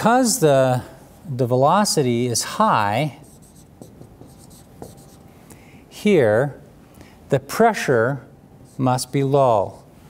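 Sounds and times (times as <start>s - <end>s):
marker on whiteboard: 3.0s - 5.3s, 8.6s - 9.9s.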